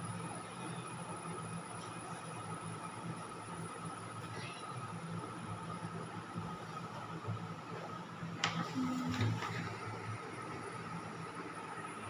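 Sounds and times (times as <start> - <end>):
faint room hum: 0.0 - 12.0.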